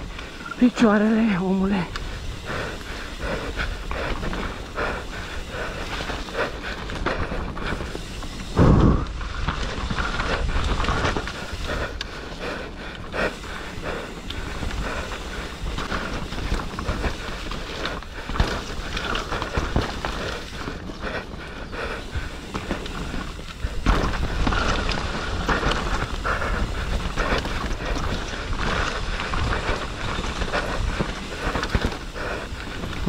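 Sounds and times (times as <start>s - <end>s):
bike tyres rolling on dirt: 0.0s - 33.0s
bike rattles and knocks: 1.7s - 33.0s.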